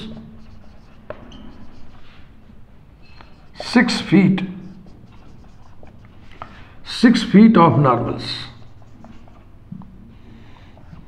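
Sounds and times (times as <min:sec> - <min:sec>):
marker squeak: 0:00.0 - 0:02.1, 0:03.0 - 0:06.0
marker writing on whiteboard: 0:00.0 - 0:11.0.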